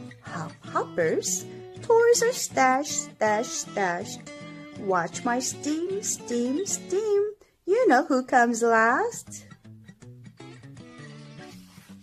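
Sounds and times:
soft background music: 0.0s - 12.0s
book page turning: 11.5s - 12.0s.

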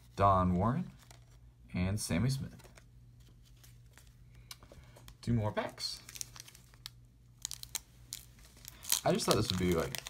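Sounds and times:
wax-paper wrapper crinkling: 0.8s - 1.5s, 5.8s - 10.0s.

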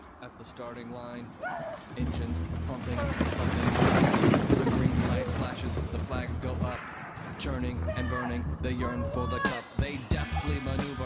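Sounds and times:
snow sliding: 0.0s - 8.0s
voices calling out: 0.0s - 11.0s.

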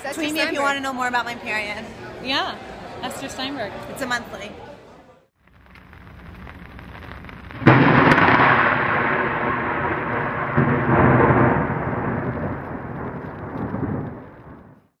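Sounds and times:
thunder crack and rumble: 5.7s - 15.0s.

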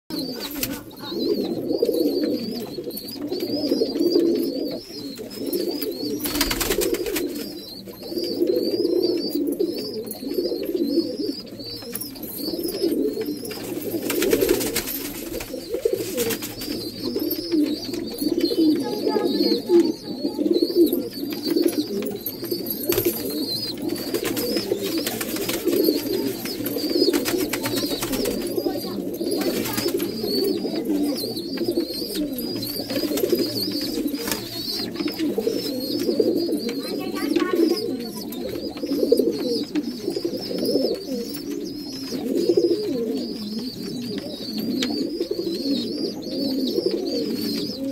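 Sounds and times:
faint high chirp: 0.1s - 47.9s
pigeons cooing: 0.1s - 47.9s.

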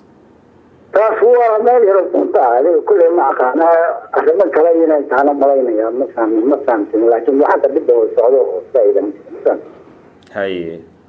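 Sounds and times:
man talking: 1.0s - 10.9s.

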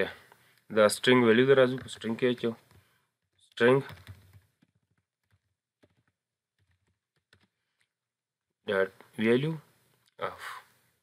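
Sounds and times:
keyboard keystrokes: 3.7s - 7.5s.

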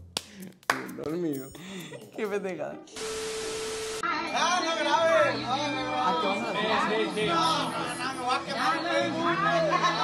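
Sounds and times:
music playing: 0.0s - 3.4s, 4.0s - 10.0s
people talking and calling out: 4.0s - 10.0s.

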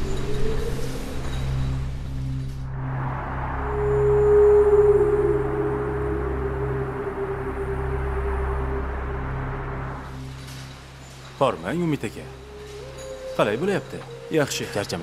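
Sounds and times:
low sustained drone: 0.0s - 15.0s
long held note: 3.2s - 10.1s, 12.4s - 14.8s.

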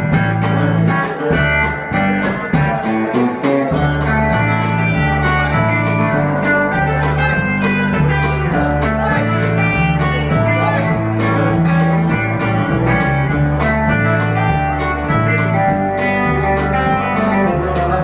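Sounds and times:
drums steady beat: 0.0s - 18.0s
electric lead guitar: 0.0s - 18.0s
walking electric bass: 0.0s - 18.0s.

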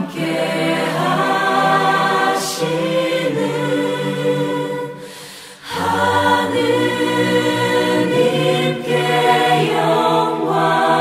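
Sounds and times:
choir singing sacred music: 0.0s - 11.0s.

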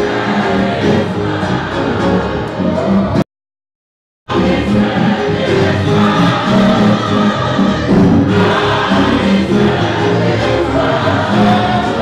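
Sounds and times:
church choir singing gospel: 0.0s - 3.2s, 4.3s - 12.0s.

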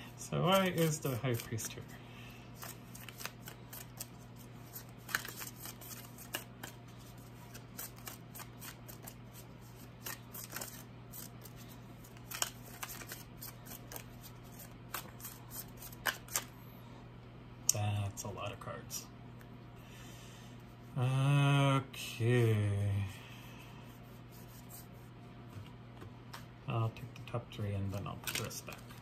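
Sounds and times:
low steady hum: 0.0s - 29.0s
cards being shuffled by hand: 0.3s - 16.5s, 27.7s - 29.0s.

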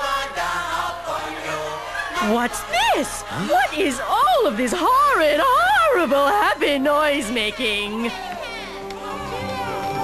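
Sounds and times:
crowd singing: 0.0s - 10.0s
musical backing: 8.1s - 10.0s.

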